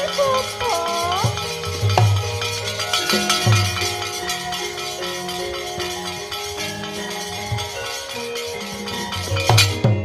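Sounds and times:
gamelan playing: 0.0s - 10.0s.

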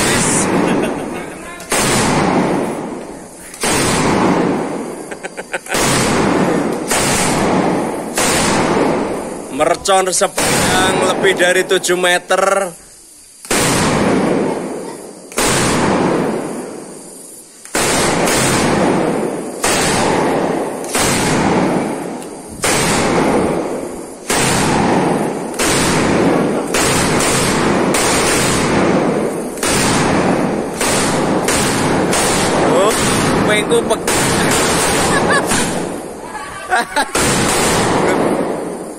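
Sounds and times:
firecrackers banging in a rapid chain: 0.0s - 12.7s, 13.4s - 38.9s.

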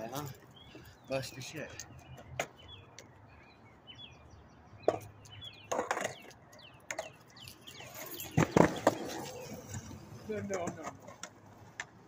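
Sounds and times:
small birds chirping: 0.0s - 11.9s
skateboard knocks on concrete: 4.8s - 5.1s, 8.4s - 9.3s, 10.4s - 11.9s.

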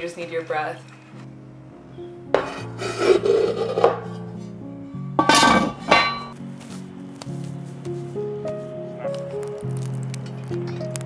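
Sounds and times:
music with held notes: 0.0s - 11.0s
rough rubbing noise: 2.3s - 4.5s.

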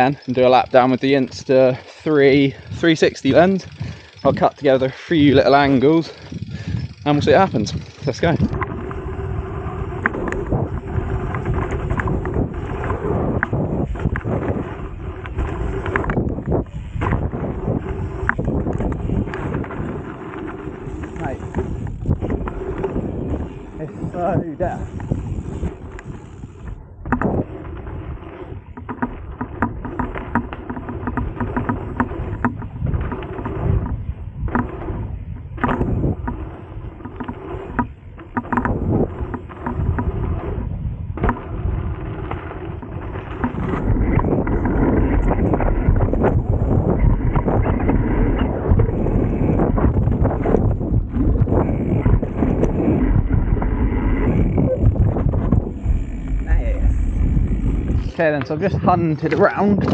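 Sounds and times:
bike knocking and rattling: 0.0s - 59.9s
bike tyres rumbling over dirt: 0.0s - 59.9s.

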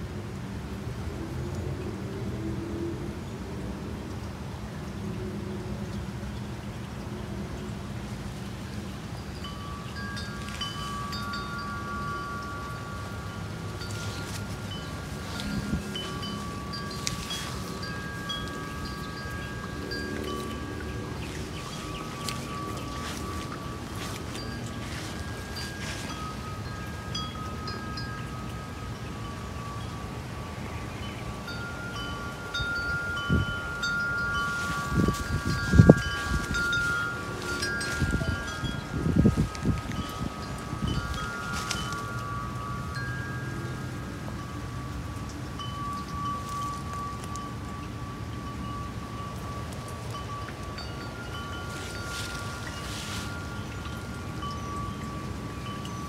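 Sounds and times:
wind gusts on microphone: 6.5s - 56.0s
wind chimes ringing: 8.6s - 56.0s.

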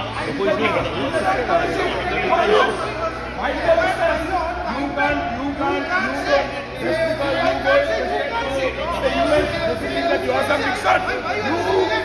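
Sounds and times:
men arguing: 0.1s - 12.0s.

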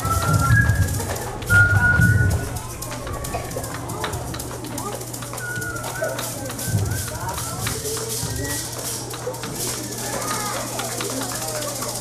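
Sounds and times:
high whistled tone: 0.0s - 2.6s, 5.4s - 8.7s
maracas shaking: 0.0s - 12.0s.

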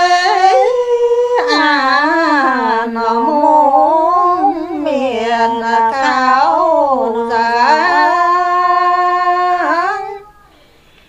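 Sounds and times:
elderly woman singing unaccompanied: 0.0s - 10.4s.

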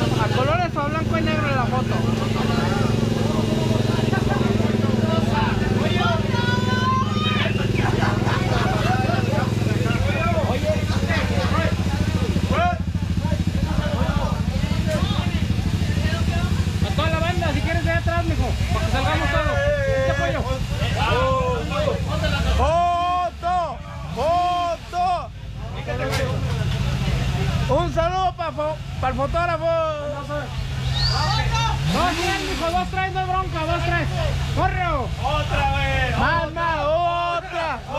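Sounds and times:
motorcycle engine idling: 0.0s - 24.2s
people talking: 0.0s - 37.9s.

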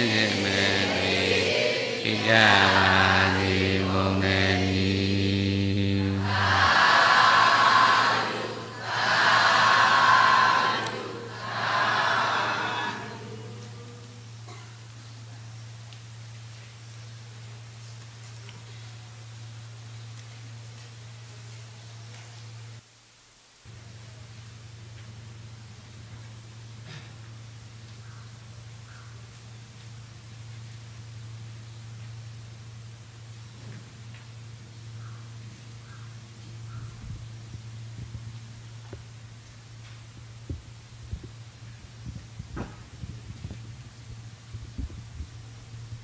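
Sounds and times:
group chanting: 0.0s - 14.0s
many voices calling together: 0.0s - 14.0s
low electrical hum: 0.0s - 46.0s.

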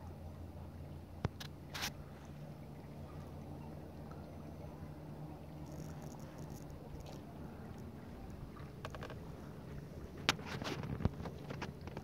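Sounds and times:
low steady hum: 0.0s - 12.0s
paddle splashing water: 0.0s - 12.0s.

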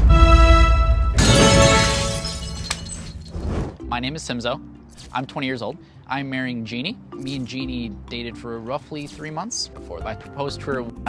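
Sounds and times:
held musical chord: 0.0s - 2.2s
glass shattering: 1.2s - 3.5s.

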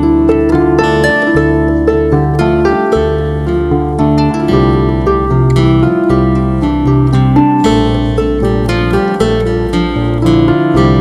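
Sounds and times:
harp plucking quick notes: 0.0s - 11.0s
sustained low bass notes: 0.0s - 11.0s.

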